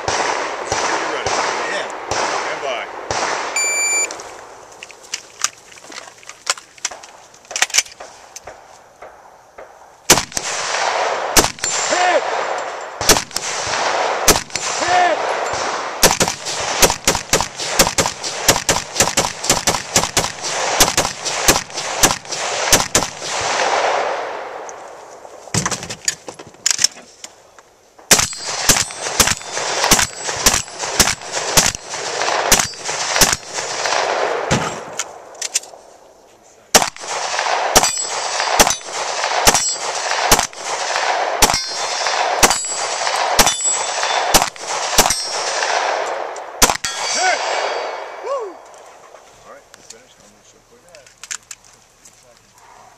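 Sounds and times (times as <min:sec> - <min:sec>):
rapid rifle fire: 0:00.0 - 0:03.6, 0:10.1 - 0:24.3, 0:28.1 - 0:34.9, 0:36.8 - 0:47.8
steel targets clanging: 0:37.8 - 0:40.0, 0:41.4 - 0:44.2, 0:45.0 - 0:45.6, 0:46.8 - 0:48.1.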